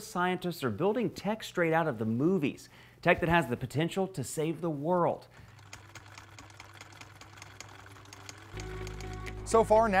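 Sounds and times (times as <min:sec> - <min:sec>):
sewing machine stitching: 0:05.4 - 0:09.4.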